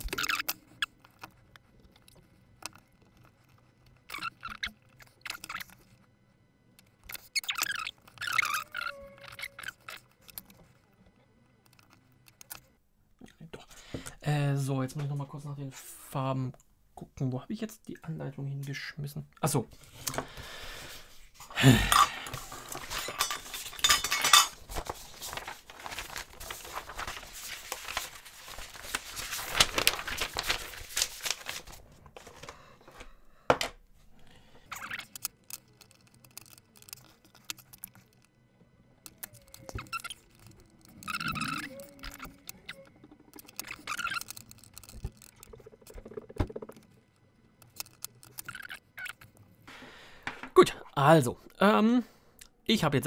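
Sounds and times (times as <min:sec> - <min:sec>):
rustling and scraping: 0:22.2 - 0:33.2.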